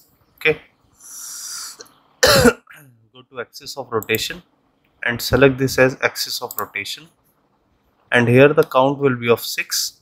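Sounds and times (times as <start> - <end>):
man breathing hissily: 1.0 - 1.9
man coughing loudly: 2.2 - 2.8.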